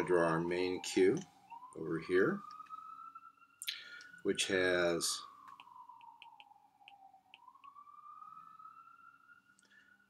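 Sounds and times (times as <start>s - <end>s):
stylus tapping on glass screen: 5.5s - 7.8s.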